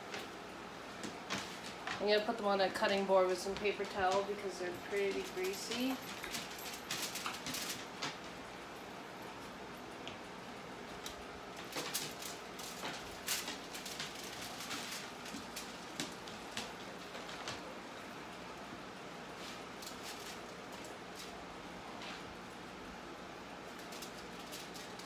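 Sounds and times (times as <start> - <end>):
foil crinkling: 5.0 - 8.2, 11.0 - 17.7, 19.4 - 21.4, 23.6 - 25.0.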